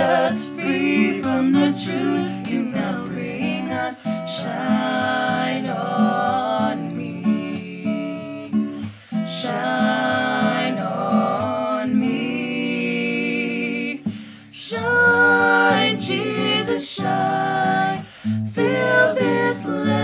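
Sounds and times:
people singing in harmony: 0.0s - 20.0s
strummed acoustic guitar: 0.0s - 20.0s.

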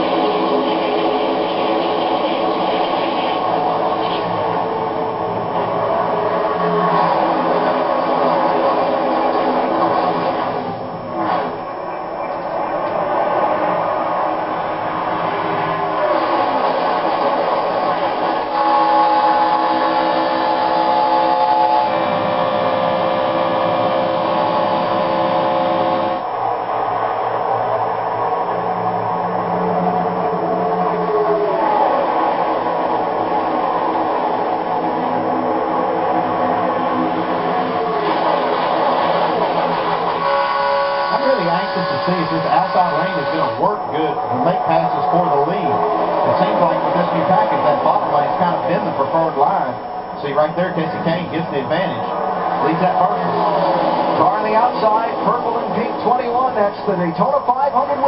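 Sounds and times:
race car engines droning: 0.0s - 58.0s.

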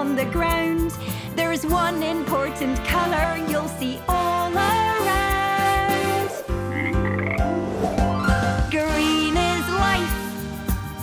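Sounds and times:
children's song music: 0.0s - 11.0s
cartoon frog croaks: 6.6s - 7.6s.

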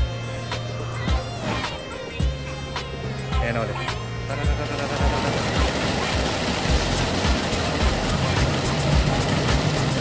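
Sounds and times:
music with low thumping beat: 0.0s - 5.7s, 6.5s - 10.0s
rushing whirring noise: 0.0s - 10.0s.

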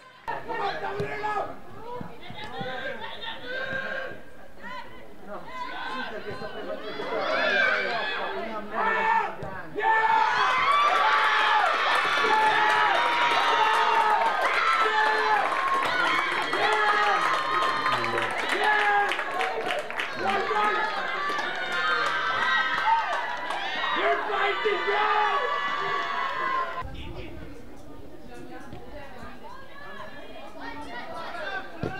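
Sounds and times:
crowd cheering: 0.0s - 26.8s
players shouting: 0.0s - 26.8s.

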